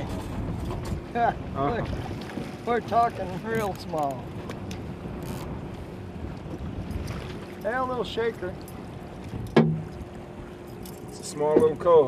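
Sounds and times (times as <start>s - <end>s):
wind on microphone: 0.0s - 7.6s
boat on open water: 0.0s - 12.0s.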